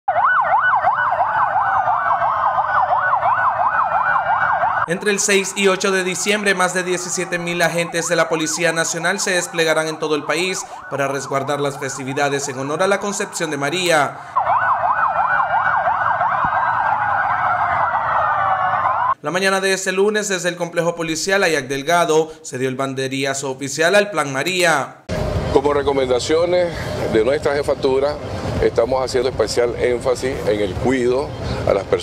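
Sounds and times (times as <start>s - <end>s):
police sirens yelping: 0.1s - 19.2s.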